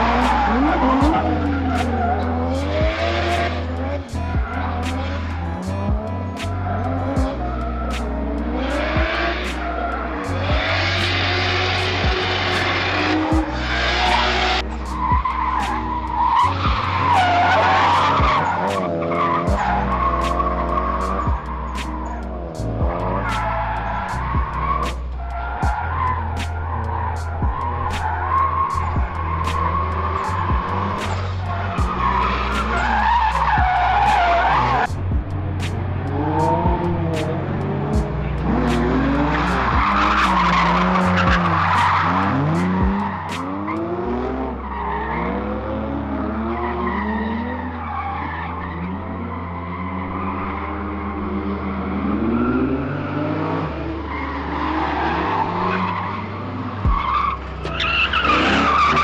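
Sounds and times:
tyres screeching: 0:00.0 - 0:35.0, 0:35.6 - 0:45.7, 0:46.3 - 0:59.0
music with beat and bass: 0:00.0 - 0:44.6, 0:56.7 - 0:59.0
car engine revving: 0:00.0 - 0:59.0.

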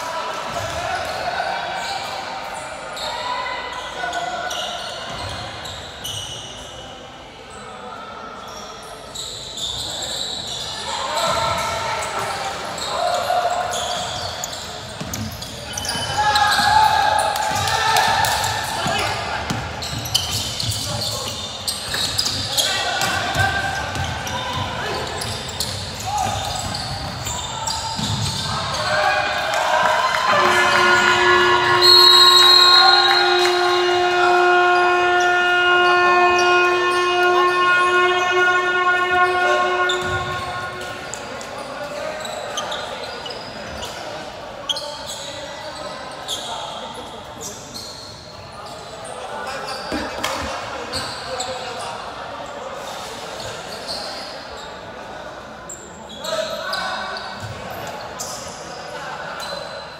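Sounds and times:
voices echoing: 0:00.0 - 0:59.9
electronic game horn: 0:30.3 - 0:40.8.

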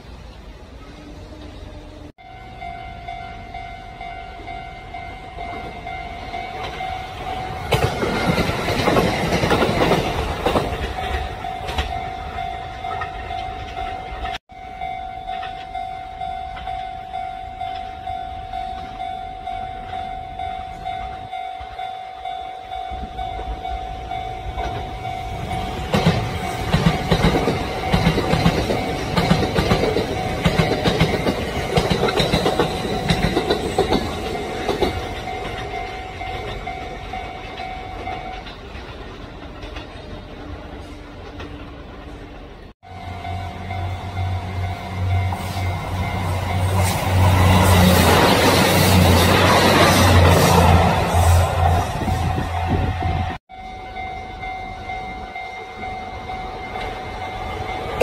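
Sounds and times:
train wheels clacking over rails: 0:06.5 - 0:12.2, 0:24.5 - 0:40.1, 0:43.7 - 0:52.9
steady high-pitched tone: 0:42.8 - 0:58.0.

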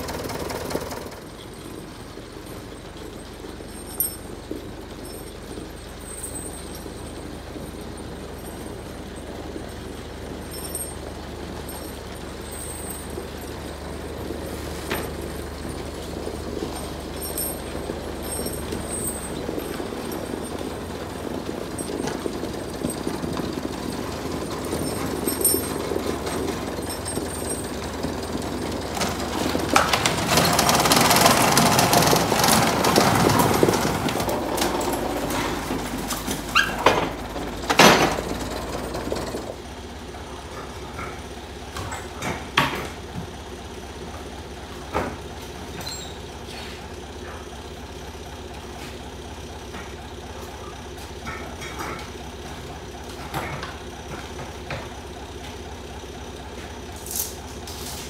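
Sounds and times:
loader engine running: 0:00.0 - 0:58.0.

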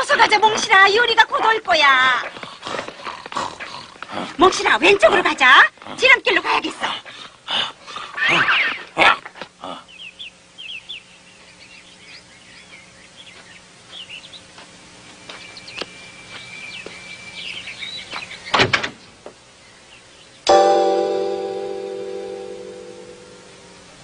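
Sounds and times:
small birds chirping: 0:00.0 - 0:20.5
faint hum: 0:19.4 - 0:24.0.

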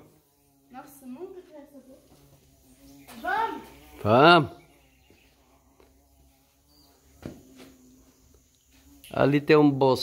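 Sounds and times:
insect buzzing: 0:00.0 - 0:10.0.

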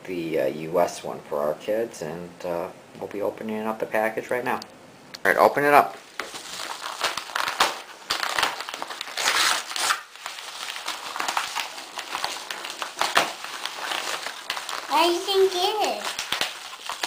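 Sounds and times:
paper envelope crinkling and tearing: 0:06.0 - 0:17.0.

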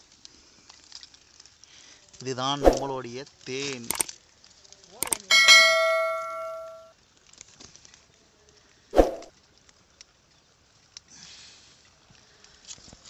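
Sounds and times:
mouse click: 0:05.0 - 0:05.3
notification bell ding: 0:05.0 - 0:06.8.

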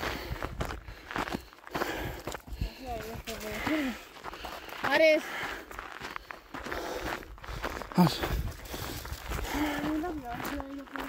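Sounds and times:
footsteps on stony dirt trail: 0:00.0 - 0:11.0.

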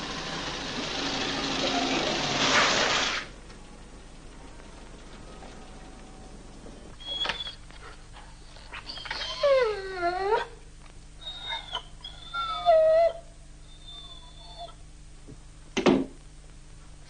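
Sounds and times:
dog whining: 0:06.7 - 0:10.6, 0:11.2 - 0:14.9.

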